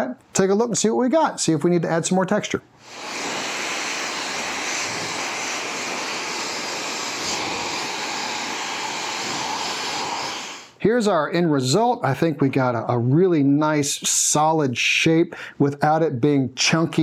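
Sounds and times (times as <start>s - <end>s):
hair dryer blowing: 2.8s - 10.8s.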